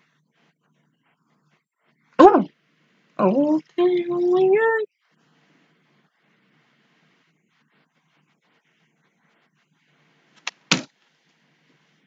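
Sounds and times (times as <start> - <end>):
sharp hand slaps: 10.4 - 10.9.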